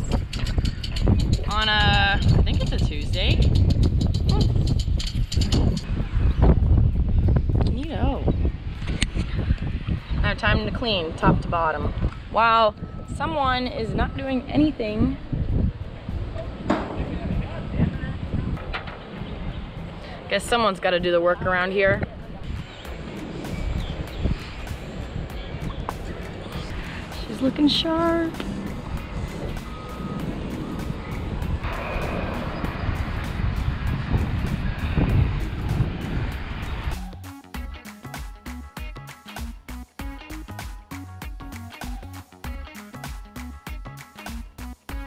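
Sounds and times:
wind buffeting microphone: 0.0s - 37.3s
sudden rush of noise: 28.3s - 37.2s.

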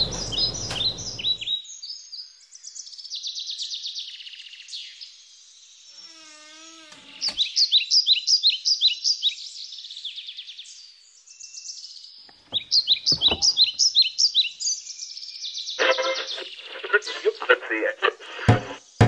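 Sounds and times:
songbird chirping: 0.0s - 19.0s
radio voice and music: 15.8s - 18.8s.

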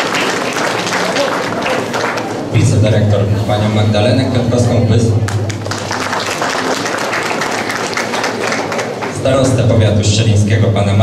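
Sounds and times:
crowd applauding: 0.0s - 2.5s, 5.3s - 9.2s.

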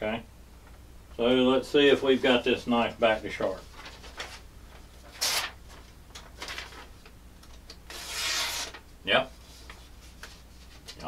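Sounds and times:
paper rustling: 3.2s - 7.1s
knife slicing through paper: 7.9s - 8.8s.

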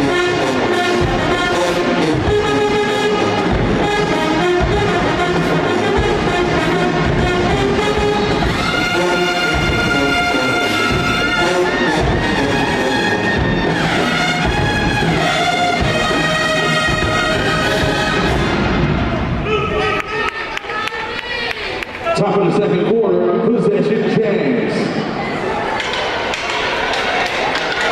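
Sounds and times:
brass band dance tune: 0.0s - 19.9s.

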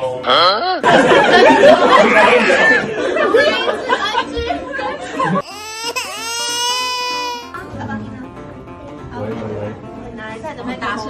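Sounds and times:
crowd laughing and chattering: 0.0s - 11.0s
cartoon crying wail: 5.4s - 7.6s.

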